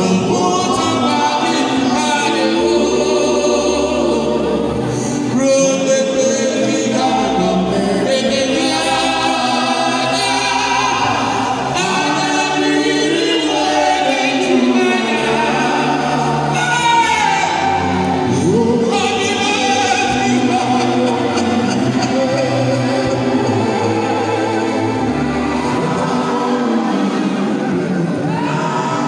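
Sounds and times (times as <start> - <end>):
choir singing gospel: 0.0 - 29.0.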